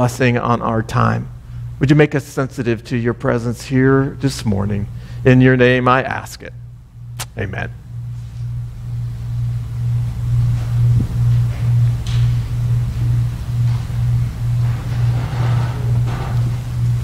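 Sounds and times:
pulsing low electronic drone: 0:06.6 - 0:17.0.

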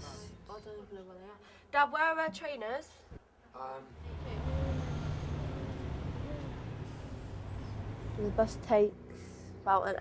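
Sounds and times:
bus engine and road rumble: 0:03.6 - 0:10.0.

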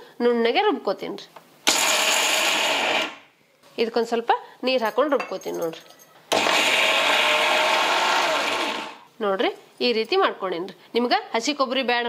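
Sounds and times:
mixer grinder running: 0:01.7 - 0:03.2, 0:06.3 - 0:09.0.

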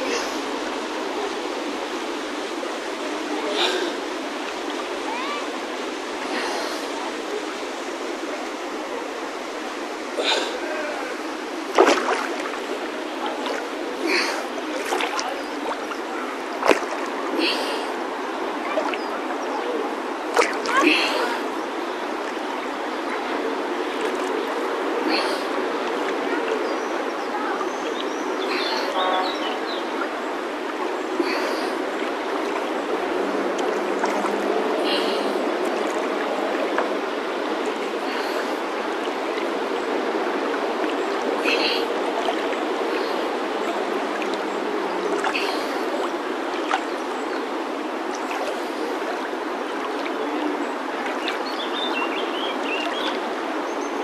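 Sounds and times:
river water rushing and lapping: 0:00.0 - 0:54.0
water splash: 0:10.2 - 0:17.9, 0:20.3 - 0:21.4, 0:28.5 - 0:37.0.

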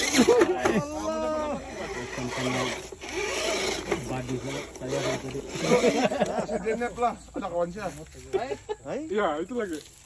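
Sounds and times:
people talking: 0:00.0 - 0:02.9, 0:03.7 - 0:09.8
rc car scraping over gravel: 0:00.0 - 0:08.4, 0:09.4 - 0:10.0.

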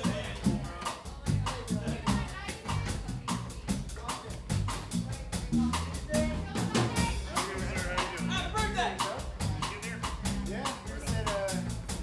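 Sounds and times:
bass guitar: 0:00.0 - 0:12.0
drum kit steady beat: 0:00.0 - 0:12.0.

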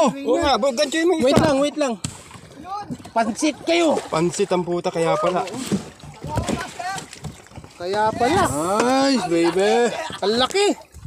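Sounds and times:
voices talking: 0:07.7 - 0:10.8.

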